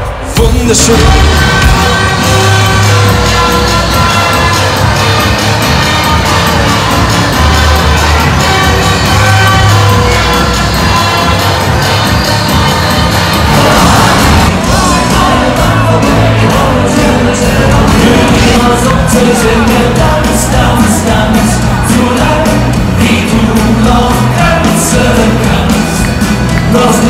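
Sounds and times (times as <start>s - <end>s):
crowd cheering: 0.0s - 27.0s
live band music over pa: 0.0s - 27.0s
voices singing: 7.9s - 27.0s.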